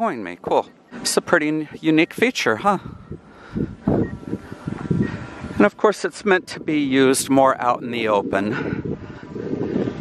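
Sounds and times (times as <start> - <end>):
wind buffeting microphone: 0.4 - 10.0.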